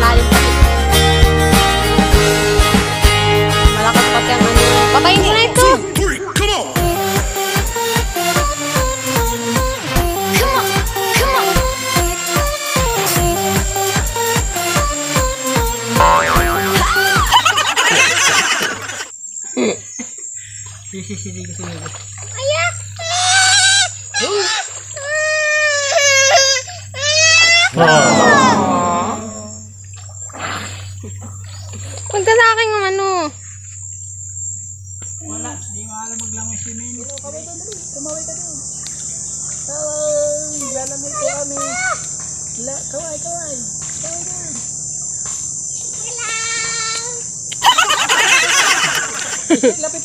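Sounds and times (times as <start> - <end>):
high-pitched insect drone: 5.0 - 50.0
voice-like calls: 16.0 - 17.3, 27.6 - 29.7
girl crying out: 23.5 - 29.5.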